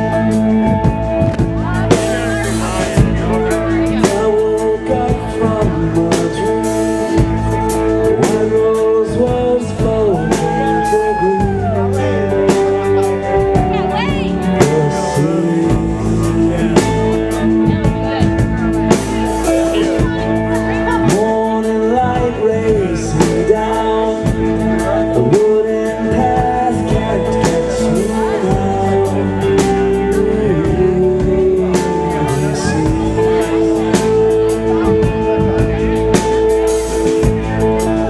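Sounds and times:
live rock band playing: 0.0 - 38.0
man singing: 0.0 - 38.0.

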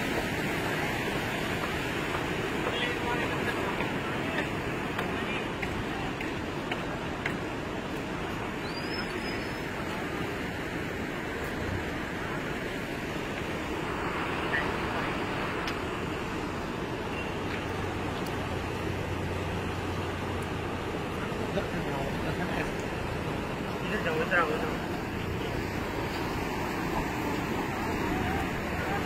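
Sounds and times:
floodwater rushing: 0.0 - 29.0.

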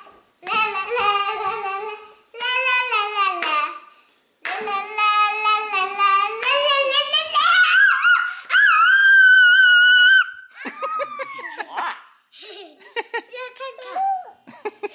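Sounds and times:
girl singing and chanting: 0.4 - 8.3
girl's high-pitched squeal: 7.4 - 11.4.

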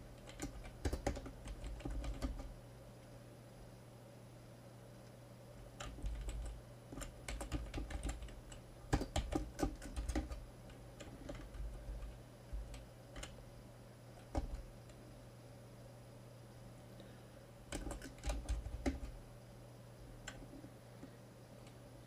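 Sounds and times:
computer keyboard typing: 0.0 - 2.6, 5.8 - 13.4, 14.2 - 15.0, 17.7 - 19.2, 20.3 - 20.6.

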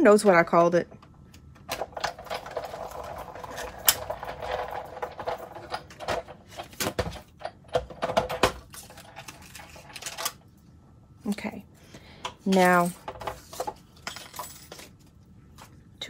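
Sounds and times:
plastic plates clicking and knocking: 2.0 - 8.7.

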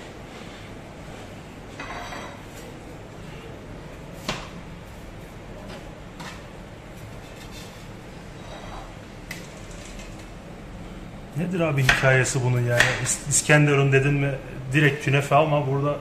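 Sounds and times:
background hum: 0.0 - 16.0
metal spatula scraping tray: 7.1 - 8.9.

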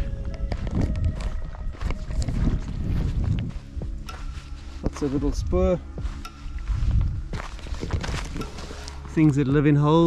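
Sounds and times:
low scuffing: 0.0 - 9.5
footsteps crunching on sandy dirt: 0.0 - 10.0.

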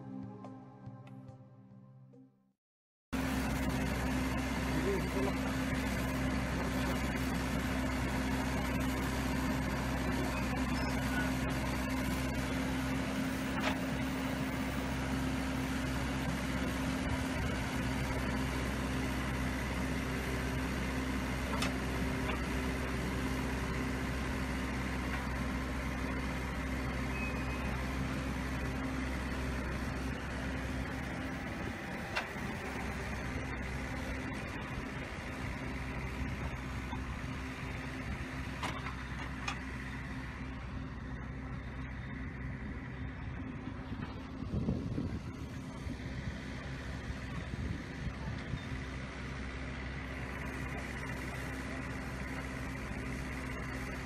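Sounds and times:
earth-moving machine engine running: 3.2 - 54.0.

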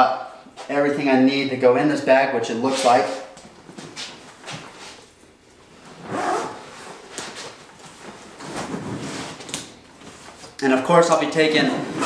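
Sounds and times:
rummaging in a soft bag: 5.8 - 7.1.

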